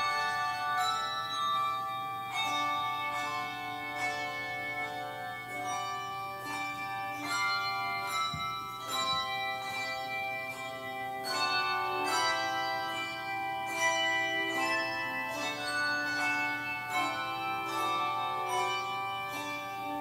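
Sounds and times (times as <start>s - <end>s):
handbell choir playing: 0.0s - 20.0s.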